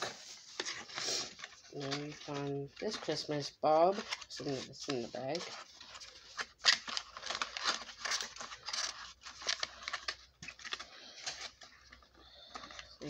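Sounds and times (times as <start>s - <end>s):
cardboard box rustling: 0.0s - 13.0s.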